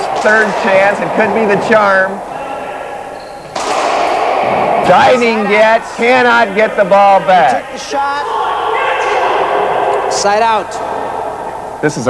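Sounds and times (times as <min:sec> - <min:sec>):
racquetball impacts echoing: 0:00.0 - 0:12.0.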